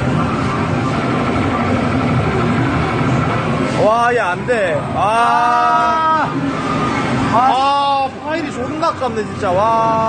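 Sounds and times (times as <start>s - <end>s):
arcade machine noise: 0.0s - 10.0s.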